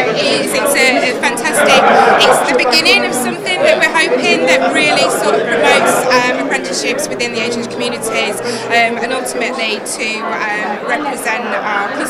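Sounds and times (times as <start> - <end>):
crowd chatter: 0.0 - 12.0
woman talking: 0.0 - 12.0.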